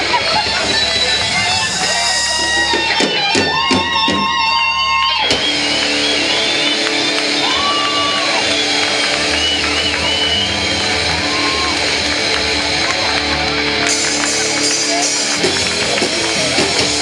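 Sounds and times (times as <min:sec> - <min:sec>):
electric guitar chord: 0:05.3 - 0:17.0.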